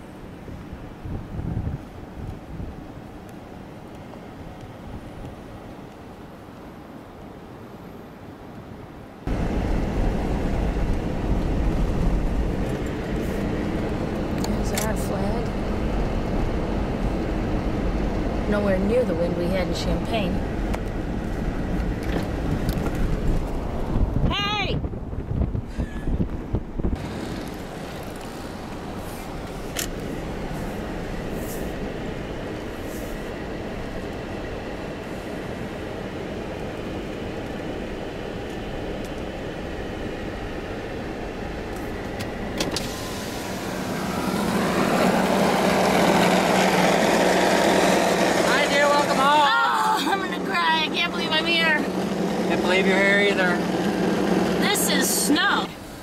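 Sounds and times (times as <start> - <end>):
car interior road and engine noise: 0.0 - 56.0
voices: 14.4 - 15.6, 18.4 - 20.5, 48.4 - 53.7, 54.5 - 55.8.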